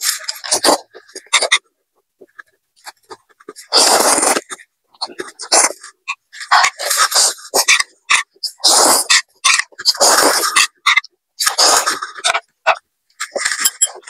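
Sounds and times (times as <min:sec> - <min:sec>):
person slurping noodles: 0:03.6 - 0:05.8, 0:06.5 - 0:12.2.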